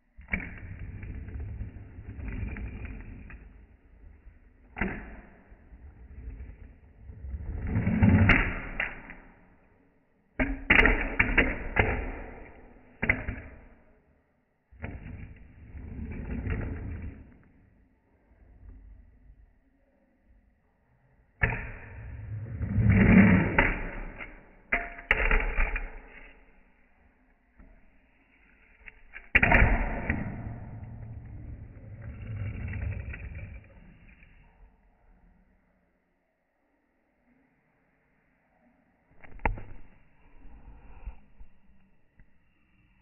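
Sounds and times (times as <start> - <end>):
fingerboard scraping and rolling on rail: 0.1 - 9.7, 10.4 - 13.9, 14.7 - 17.8, 21.4 - 34.8.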